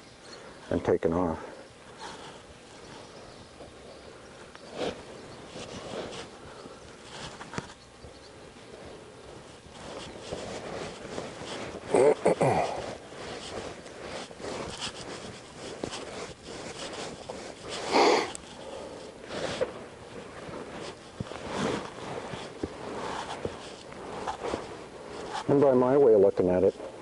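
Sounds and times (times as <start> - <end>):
horse tack noises: 0.0 - 27.0
hoof steps on soft dirt: 2.0 - 11.9, 12.6 - 25.8.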